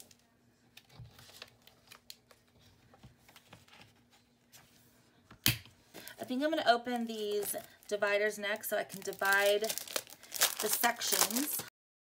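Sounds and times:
paper pages rustling: 0:08.9 - 0:11.7.

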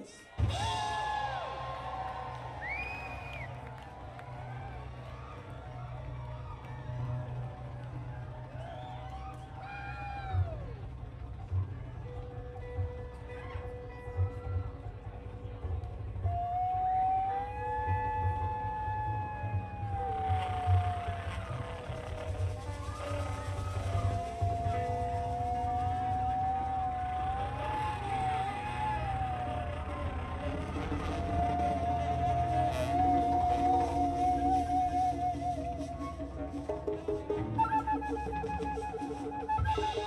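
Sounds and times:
low bass rumble: 0:18.2 - 0:37.7
sliding pitched tone: 0:20.0 - 0:40.0.

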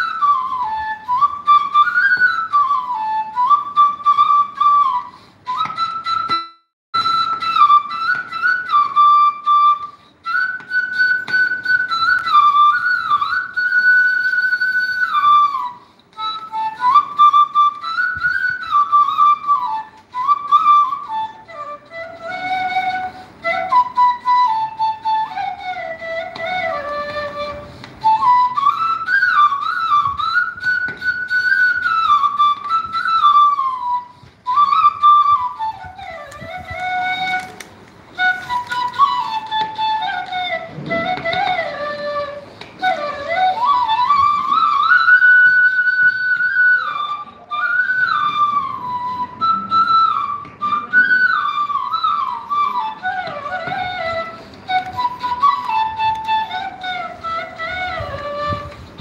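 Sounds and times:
flute solo melody: 0:00.0 - 0:59.0.

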